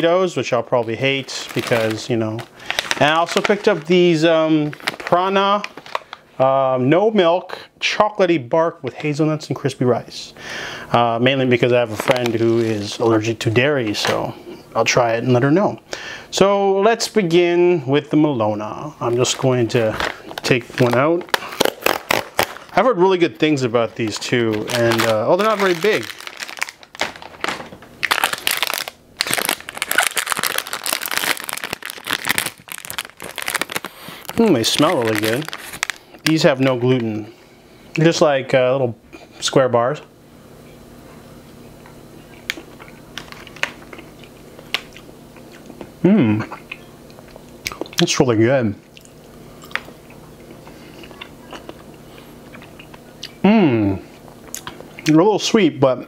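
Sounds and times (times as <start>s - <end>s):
plastic wrapper crinkling: 0.9s - 6.2s, 11.8s - 13.3s, 19.0s - 37.1s, 43.2s - 45.0s.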